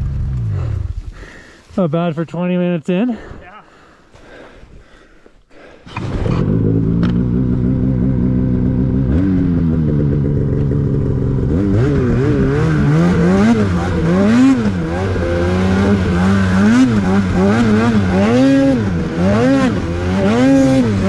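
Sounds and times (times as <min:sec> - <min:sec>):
snowmobile engine revving: 0:05.9 - 0:21.0.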